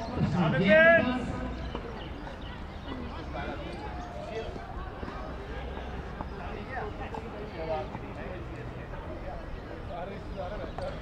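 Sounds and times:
distant people talking: 0:00.0 - 0:11.0.

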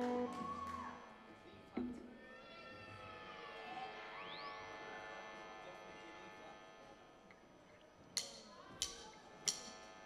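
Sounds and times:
live band soft held tones: 0:00.0 - 0:02.2.

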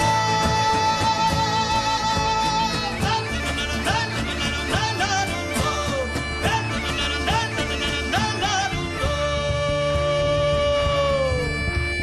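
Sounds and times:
bagpipe with drone: 0:00.0 - 0:12.0
percussion keeping a beat: 0:00.0 - 0:12.0
plucked strings: 0:00.0 - 0:12.0.

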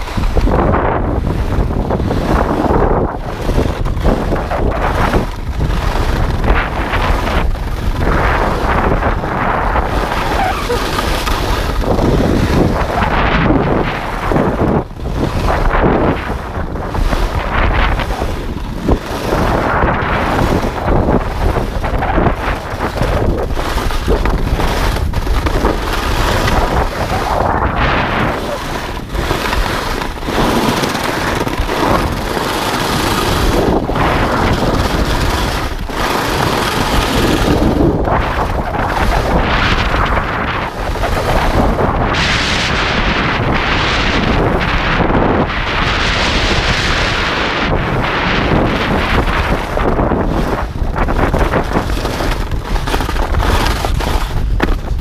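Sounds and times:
skis scraping over snow: 0:00.0 - 0:55.0
wind rushing over microphone: 0:00.0 - 0:55.0.

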